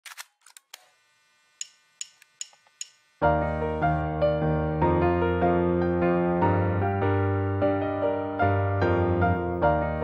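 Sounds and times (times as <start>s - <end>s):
camera shutter clicks: 0.0s - 0.9s.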